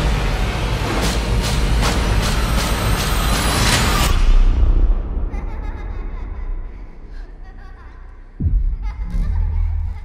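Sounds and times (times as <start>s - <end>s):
deep rumble: 8.3s - 10.0s.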